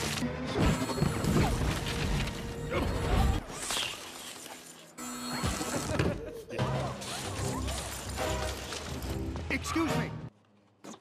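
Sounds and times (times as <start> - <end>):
action film music: 0.0 - 4.0, 5.0 - 10.4
film sound effects: 0.0 - 11.0.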